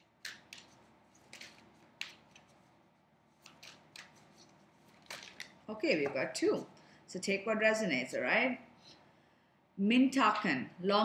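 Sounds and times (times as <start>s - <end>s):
cards being shuffled: 0.2s - 5.6s.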